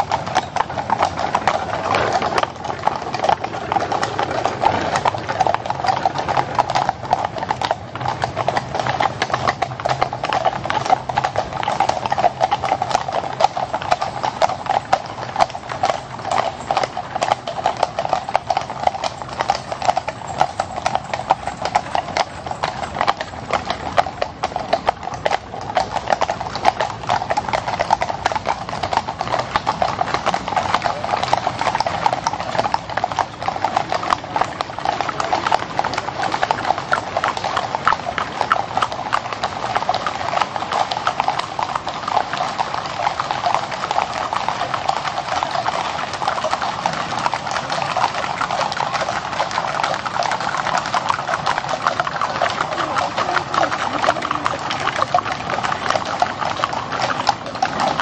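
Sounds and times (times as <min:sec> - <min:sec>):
horse hooves clip-clopping on asphalt: 0:00.0 - 0:58.0.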